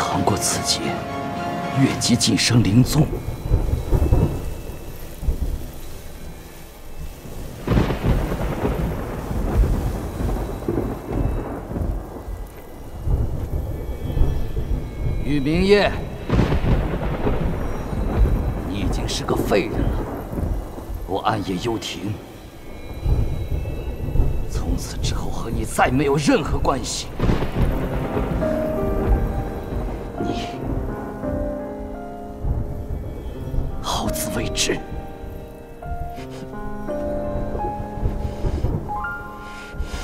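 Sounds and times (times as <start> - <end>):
thunder rumbling: 0.0 - 40.0
loud thunder crash: 7.6 - 21.2, 27.1 - 33.0.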